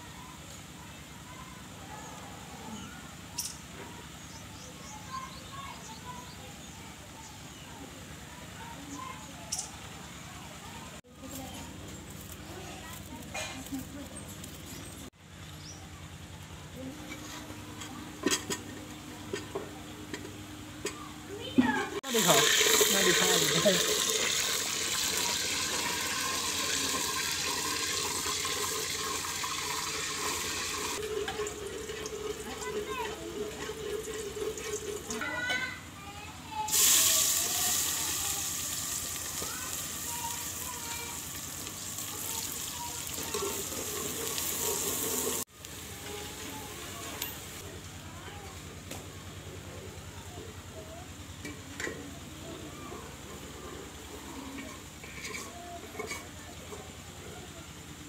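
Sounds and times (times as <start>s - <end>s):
oil sizzling in a pot: 22.0s - 35.5s, 36.6s - 47.6s.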